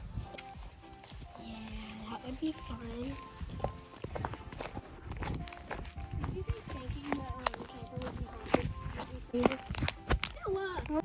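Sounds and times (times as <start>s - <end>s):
footsteps: 0.0s - 11.0s.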